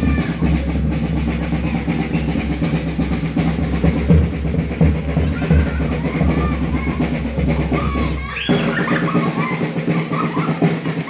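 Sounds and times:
drum-led music with heavy bass: 0:00.0 - 0:11.0
short high calls: 0:07.7 - 0:10.6.

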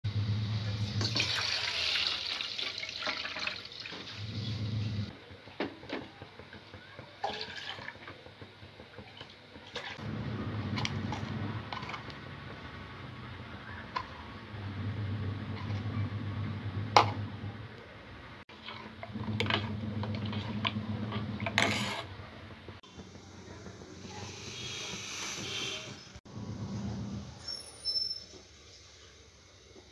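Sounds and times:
low hum: 0:10.0 - 0:17.8.

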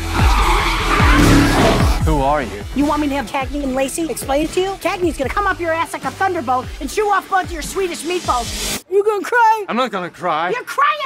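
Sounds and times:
harsh screeching noise: 0:00.0 - 0:02.1
film music: 0:00.0 - 0:08.8
deep falling whooshes: 0:00.3 - 0:02.2.

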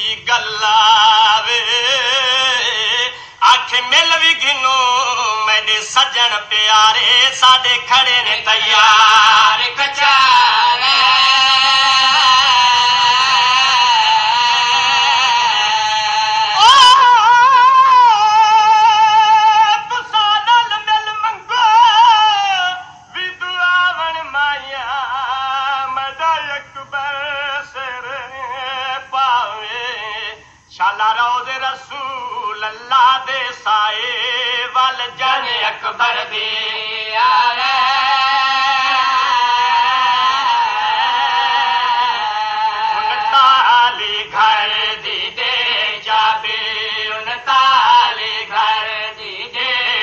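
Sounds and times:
old radio recording of music: 0:42.3 - 0:50.0.

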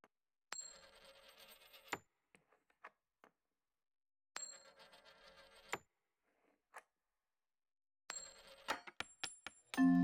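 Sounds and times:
coin spinning on wooden table: 0:00.6 - 0:02.0, 0:04.5 - 0:05.8, 0:08.2 - 0:09.0.

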